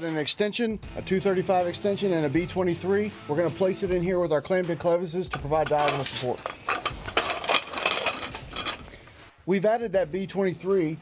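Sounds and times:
metal clicking and rattling: 5.3s - 8.9s.

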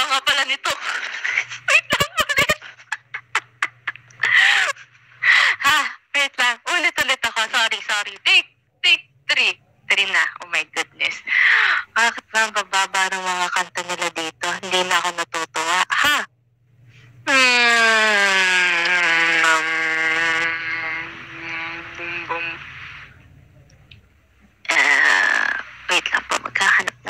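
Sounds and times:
woman speaking: 0.0s - 2.6s, 5.3s - 16.3s, 20.2s - 23.0s, 24.7s - 27.0s.

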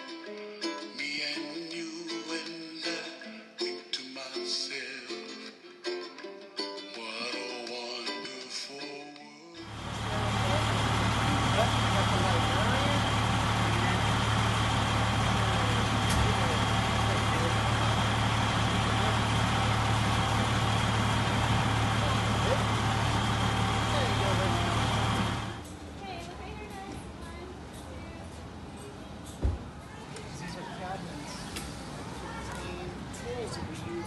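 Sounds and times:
diesel engine droning: 9.6s - 29.3s.

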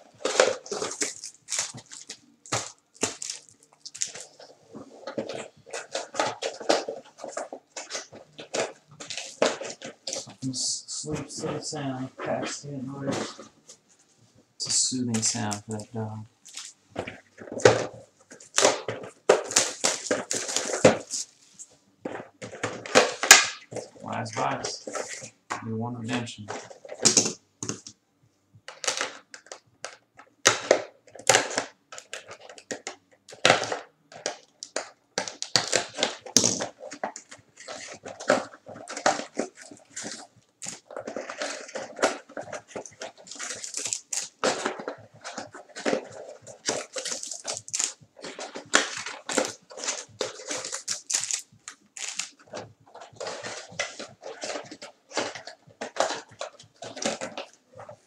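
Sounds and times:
packaging crinkling and tearing: 0.0s - 13.3s, 14.6s - 21.4s, 30.4s - 58.0s.

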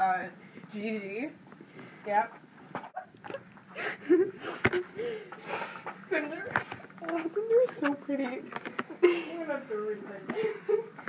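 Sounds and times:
soft murmurs and breaths: 3.7s - 11.0s.

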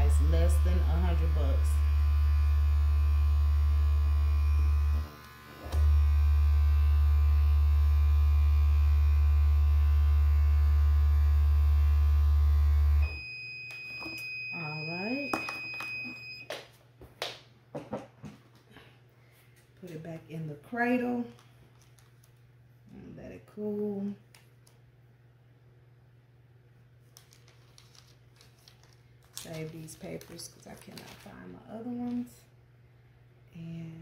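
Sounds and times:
heat press electrical hum: 0.0s - 34.0s
paper rustling and tapping: 27.1s - 31.3s.

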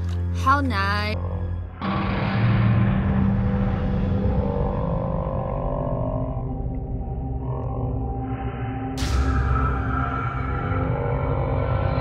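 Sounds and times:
ominous rumbling drone: 1.1s - 12.0s.

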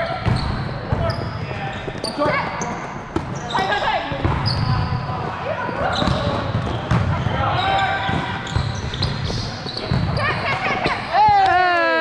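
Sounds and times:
sneakers squeaking on gym floor: 0.0s - 11.7s.

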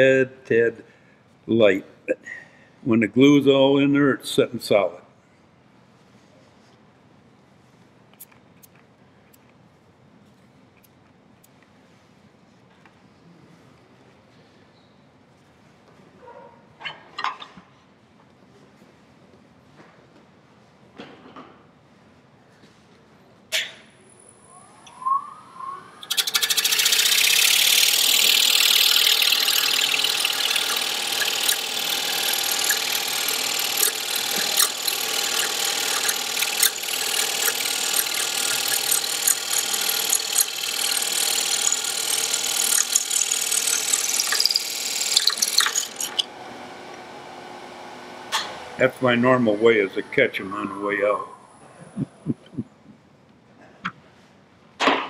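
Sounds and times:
wood lathe whine: 24.4s - 51.6s
turning tool scraping wood: 26.0s - 46.3s.

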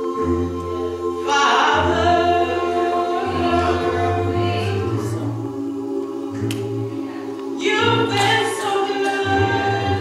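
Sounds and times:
a cappella choir singing: 0.0s - 10.0s.

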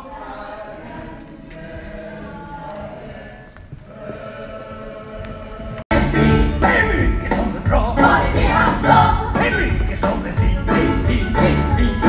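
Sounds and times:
voices and singing from stage: 0.0s - 12.0s.

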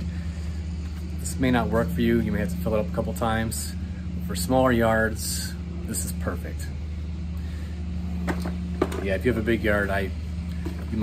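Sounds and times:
low machine hum: 0.0s - 11.0s.

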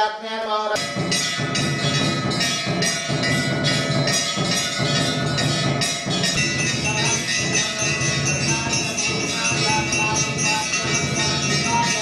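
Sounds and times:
brass bell clanging: 0.8s - 12.0s.

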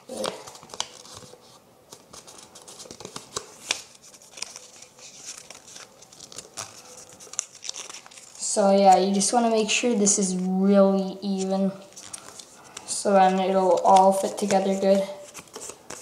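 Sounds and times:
paper crinkling: 0.1s - 9.3s, 11.3s - 16.0s.

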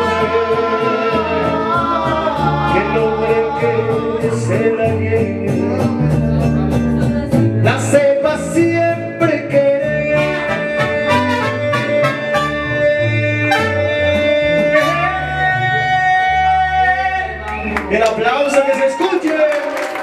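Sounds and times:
strummed guitars: 0.0s - 17.8s
bass line: 0.0s - 18.3s
mariachi band playing: 0.0s - 19.5s.

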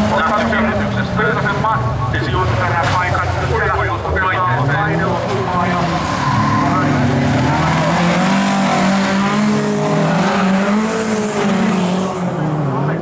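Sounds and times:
car engine revving: 0.0s - 13.0s
gravel and tyre noise: 0.0s - 13.0s.

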